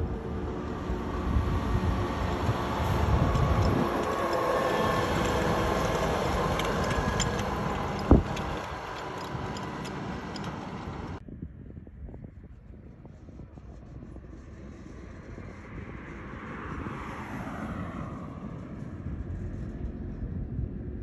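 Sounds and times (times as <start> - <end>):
truck engine passing: 0.0 - 11.2.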